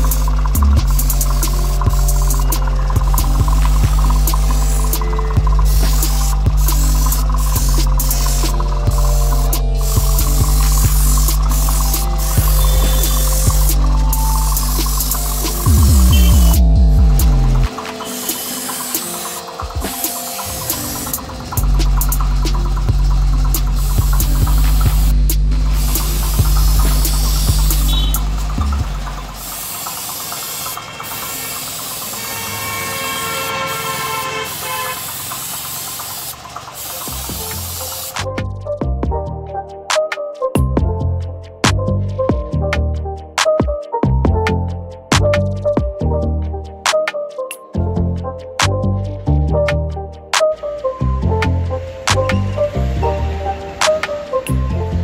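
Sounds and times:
background music: 0:00.0 - 0:29.6, 0:37.1 - 0:55.0
spray gun hissing: 0:00.0 - 0:38.2.

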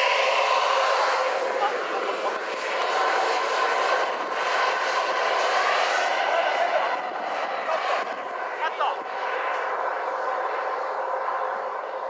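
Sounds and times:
model jet engines whining: 0:00.0 - 0:12.0.

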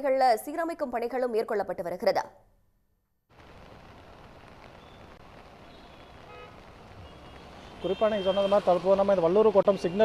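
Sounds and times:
steady rain: 0:03.3 - 0:10.0
traffic on a wet road: 0:04.8 - 0:10.0
faint vehicle horn toot: 0:06.3 - 0:08.8.

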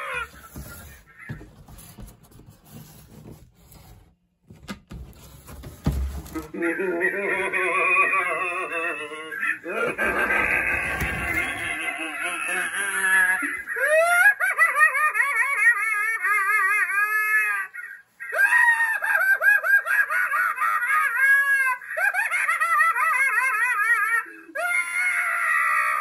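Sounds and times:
maniacal laughing sound effect: 0:00.0 - 0:01.5, 0:06.4 - 0:26.0.

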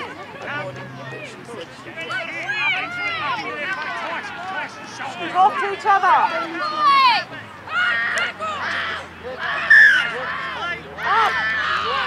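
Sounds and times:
spectators and players shouting: 0:00.0 - 0:12.0
loud high call: 0:07.7 - 0:10.4.

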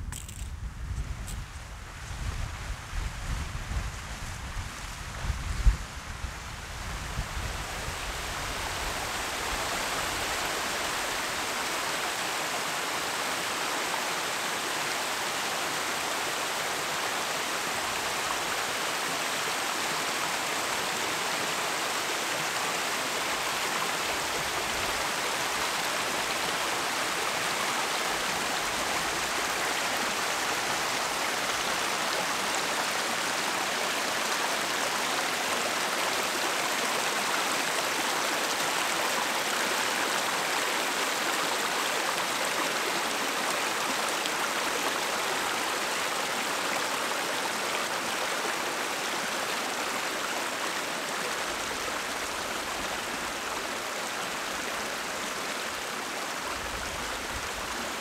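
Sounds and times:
wind rumble on microphone: 0:00.0 - 0:09.8
stream rushing over rocks: 0:06.5 - 0:58.0.

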